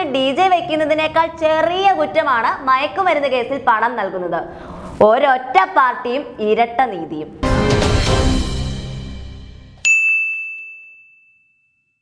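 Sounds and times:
bright electronic ding: 0:09.8 - 0:12.0.

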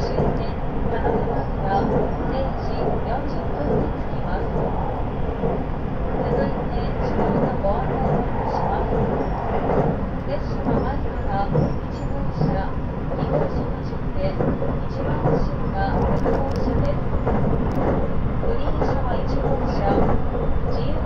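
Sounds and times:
indistinct voices: 0:00.0 - 0:21.0
train wheels rumbling: 0:00.0 - 0:21.0.

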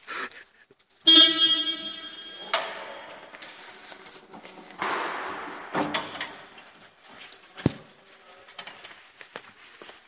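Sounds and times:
electric horn beep: 0:01.1 - 0:02.9.

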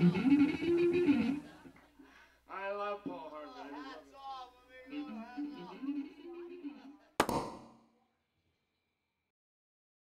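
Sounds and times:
sharp double knock: 0:07.2 - 0:07.8.

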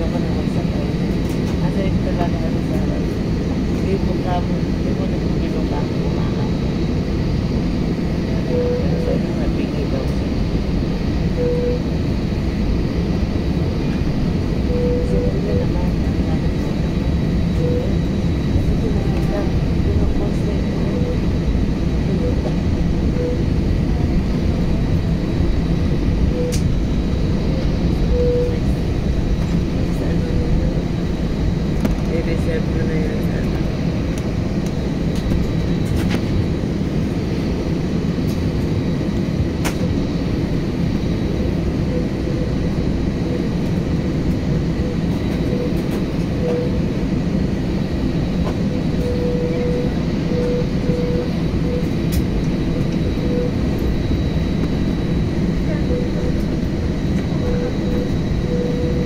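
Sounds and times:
faint high engine whine: 0:00.0 - 0:59.0
jet engines low rumble: 0:00.0 - 0:59.0.

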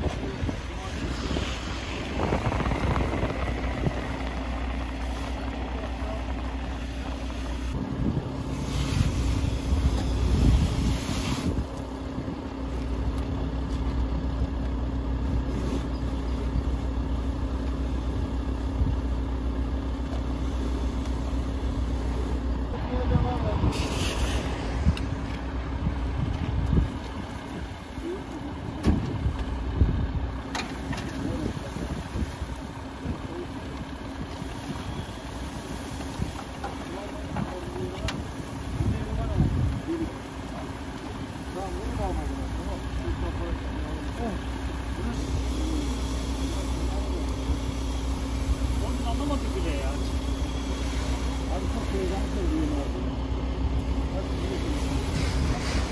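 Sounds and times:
diesel engine idling: 0:00.0 - 0:55.9.

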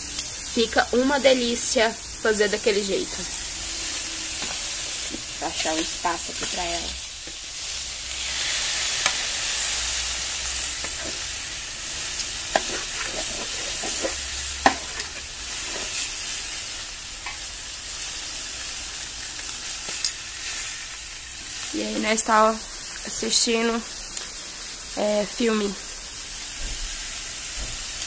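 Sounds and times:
meat sizzling on a tray: 0:00.0 - 0:28.0.

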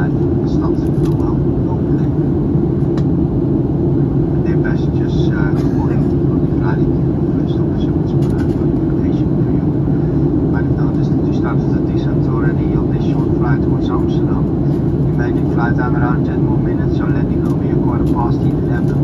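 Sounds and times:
jet engines and airflow: 0:00.0 - 0:19.0.

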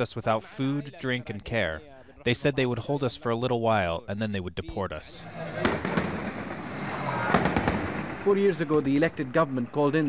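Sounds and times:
gunshots echoing: 0:05.2 - 0:10.0.

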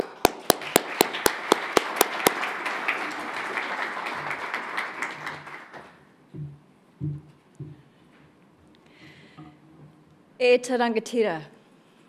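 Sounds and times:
audience applauding: 0:00.0 - 0:06.0
close person clapping: 0:00.0 - 0:06.0.

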